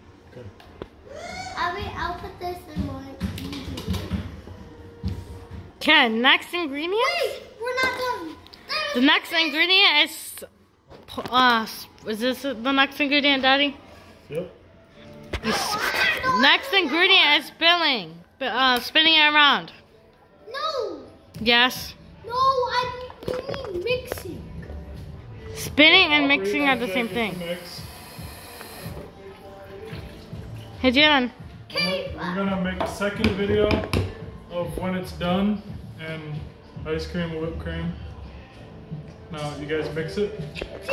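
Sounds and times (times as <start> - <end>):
child's wavering voice: 1.1 - 2.1.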